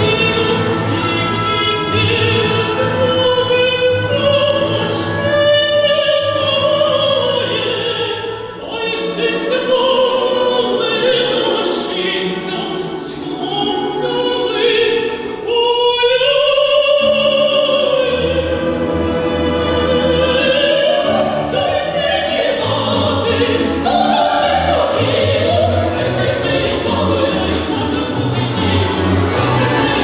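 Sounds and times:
folk orchestra with plucked strings: 0.0s - 30.0s
women singing operatically: 19.3s - 30.0s.

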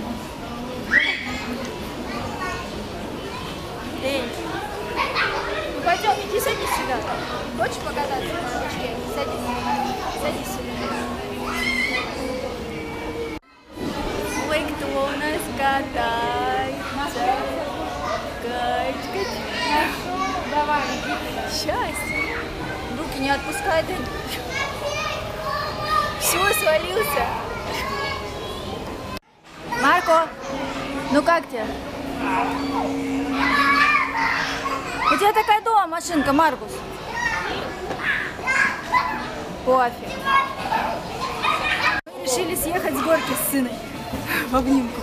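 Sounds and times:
children's voices and chatter: 0.0s - 45.0s.

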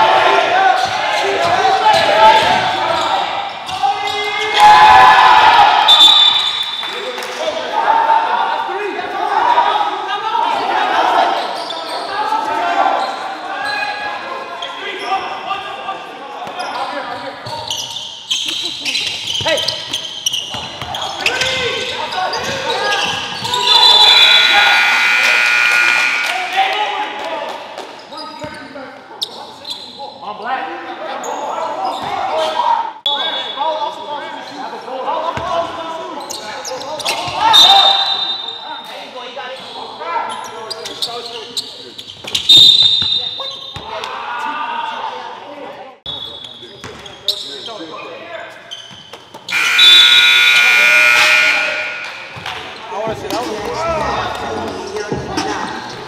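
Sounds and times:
people shouting: 0.0s - 6.0s, 22.6s - 26.7s, 49.5s - 52.6s
basketball bouncing on court: 19.2s - 21.0s
loud high tone: 24.0s - 26.6s, 49.5s - 52.4s.

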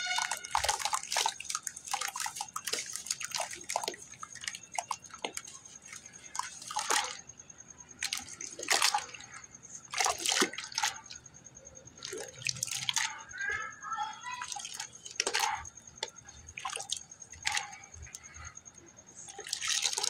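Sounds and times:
hands squelching wet slurry in bucket: 0.0s - 7.3s, 7.9s - 11.3s, 11.9s - 18.5s, 19.2s - 20.0s.

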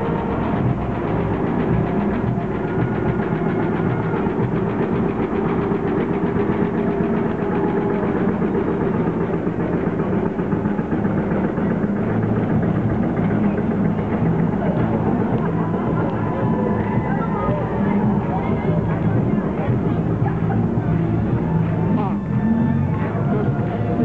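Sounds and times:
tractor engine chugging: 0.0s - 24.0s.

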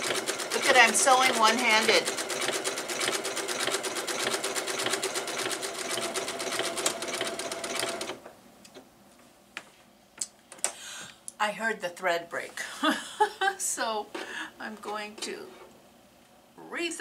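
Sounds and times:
sewing machine running fast: 0.0s - 8.2s.

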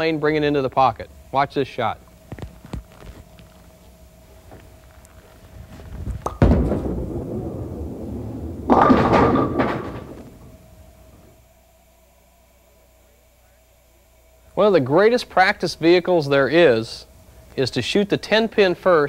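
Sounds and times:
bowling ball rolling rumble: 5.0s - 11.3s
bowling ball thud on wooden lane: 6.2s - 10.6s
bowling pins clattering crash: 6.2s - 10.7s.

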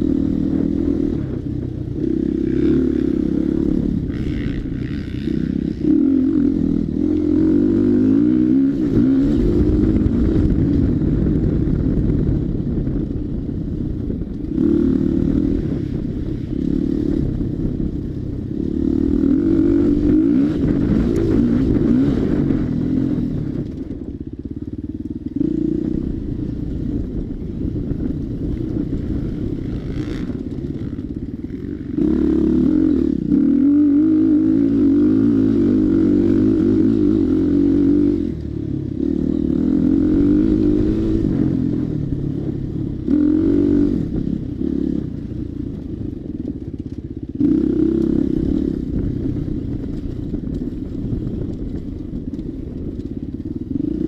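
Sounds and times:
dirt bike engine revving: 0.0s - 11.6s, 14.4s - 24.0s, 28.3s - 45.5s.

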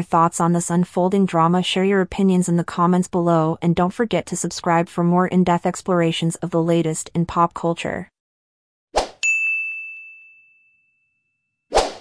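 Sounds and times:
bright ding: 9.2s - 11.4s
brief swoosh: 11.7s - 12.0s.

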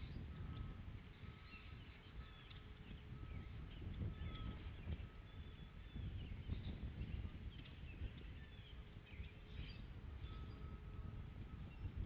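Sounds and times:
distant bird chirps: 0.0s - 12.0s
wind rumble on microphone: 0.0s - 12.0s.

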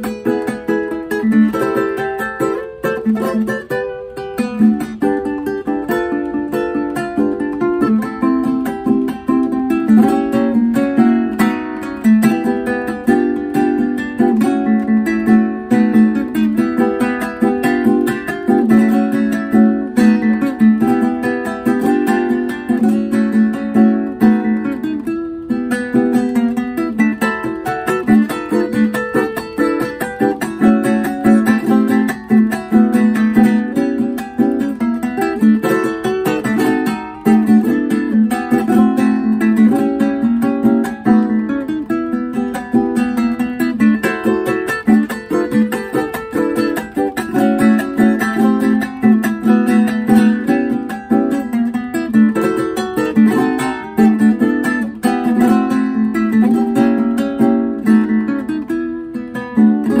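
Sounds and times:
fingerpicked plucked string instrument: 0.0s - 60.0s.

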